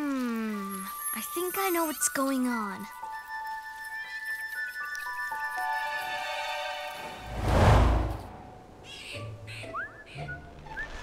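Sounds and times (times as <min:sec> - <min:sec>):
soft music: 0:00.7 - 0:07.3.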